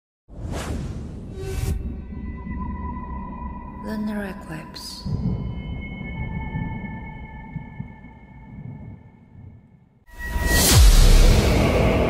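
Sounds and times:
whooshes: 0.3 - 2.0.

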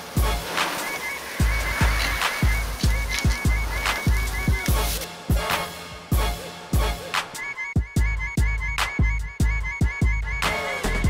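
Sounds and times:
heavy bass drum beat: 1.4 - 7.2, 7.8 - 11.0.

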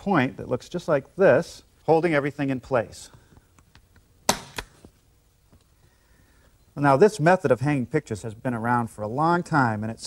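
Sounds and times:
point driver snap: 3.7 - 4.9.

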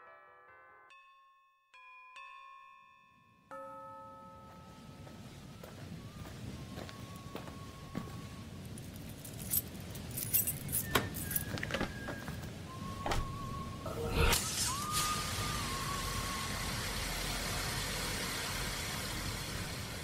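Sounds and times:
chime: 0.0 - 11.6
low noisy bed: 3.5 - 20.0
bright jingling bursts: 8.5 - 11.6
bell-like electronic note: 13.7 - 16.2.

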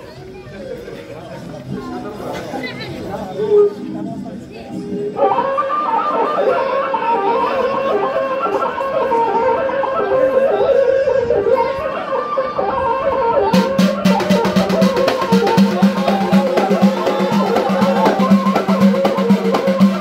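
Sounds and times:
live folk music: 4.5 - 20.0
frame drum beat: 13.5 - 20.0.

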